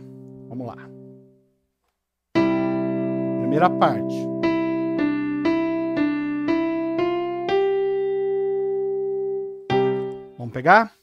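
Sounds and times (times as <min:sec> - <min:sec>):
electronic keyboard hymn melody: 0:00.0 - 0:01.4, 0:02.3 - 0:10.7.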